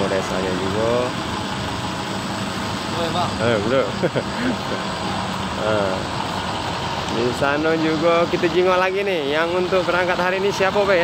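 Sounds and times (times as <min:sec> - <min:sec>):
diesel bus engine idling: 0:00.0 - 0:11.0.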